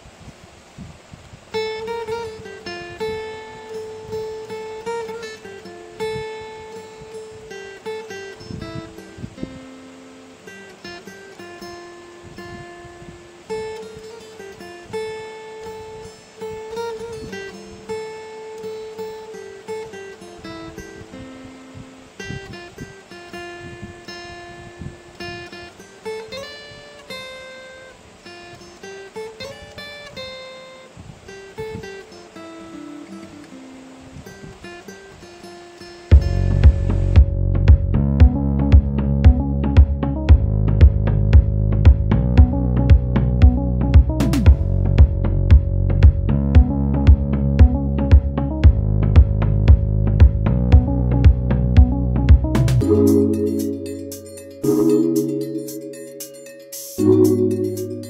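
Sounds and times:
plucked-string melody: 36.1 - 48.8, 50.7 - 58.0.

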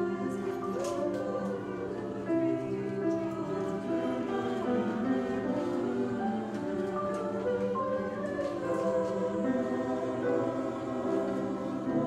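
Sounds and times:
mixed choir singing: 0.0 - 12.0.

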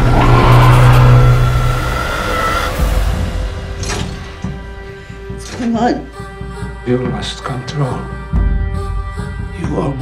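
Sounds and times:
rising glide: 0.0 - 2.7
loud low drone: 0.0 - 3.6.

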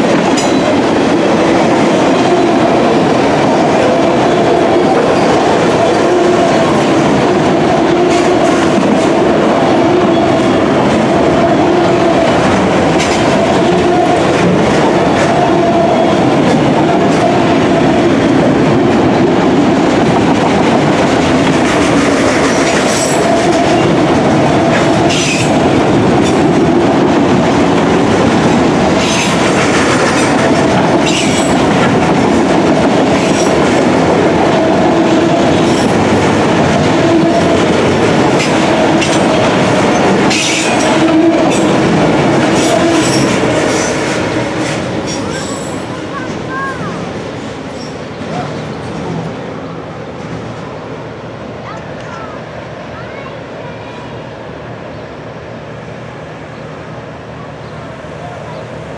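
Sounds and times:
train wheels rumbling on rails: 0.0 - 58.9.

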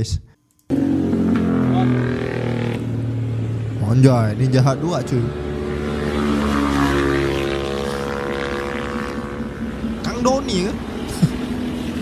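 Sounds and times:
motorcycle engines passing: 0.7 - 12.0.

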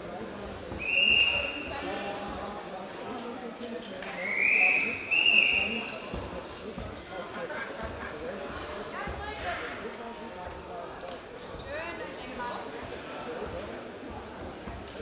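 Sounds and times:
murmur of voices: 0.0 - 15.0
referee's whistle blasts: 0.8 - 1.8, 4.2 - 5.9.

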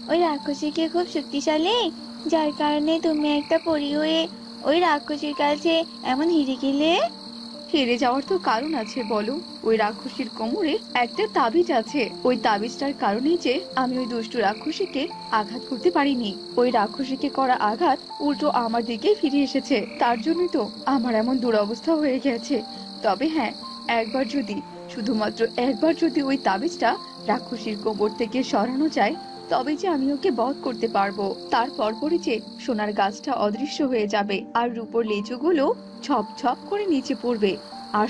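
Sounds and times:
frogs croaking: 0.0 - 38.0
high insect trill: 0.0 - 38.0.

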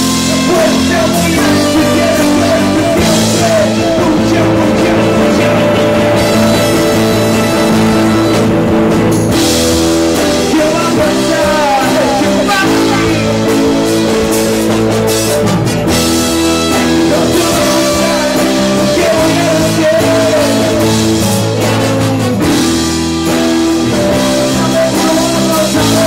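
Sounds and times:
singing: 0.0 - 8.1, 10.4 - 13.6, 16.6 - 22.4, 23.8 - 26.0
live rock band playing: 0.0 - 26.0.

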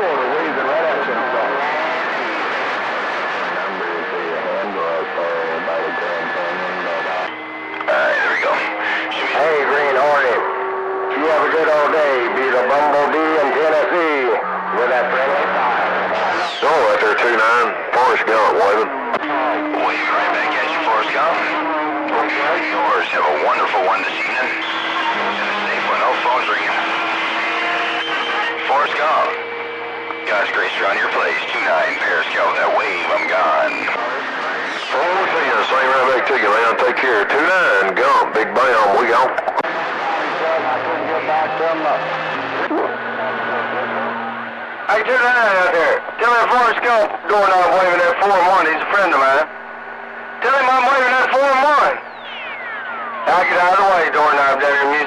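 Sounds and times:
steady low tone: 0.0 - 45.0, 51.8 - 54.9
radio voice through static: 0.0 - 49.5, 50.3 - 55.0.

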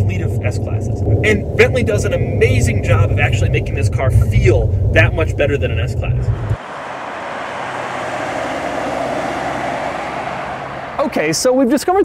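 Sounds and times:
tyre and road noise: 5.9 - 12.0
car driving past: 6.0 - 11.7.

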